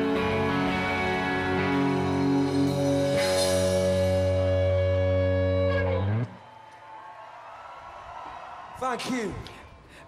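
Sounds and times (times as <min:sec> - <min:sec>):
electric guitars ringing chord: 0:00.0 - 0:06.3.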